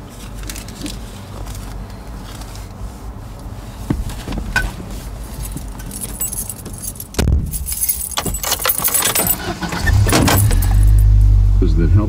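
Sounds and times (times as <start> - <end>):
car engine rumble: 0.0 - 12.0
car keys jangling: 4.1 - 11.3.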